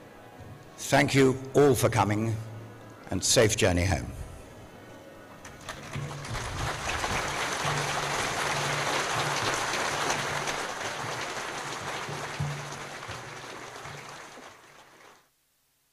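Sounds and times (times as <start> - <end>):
crowd applauding: 5.4 - 15.3.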